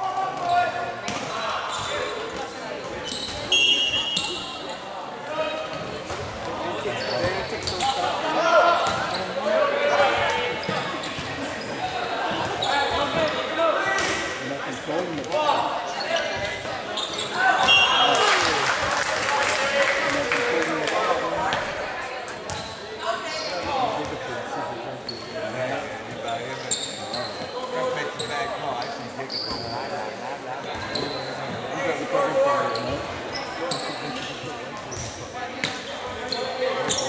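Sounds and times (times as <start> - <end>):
people calling out and talking: 0.0 - 37.0.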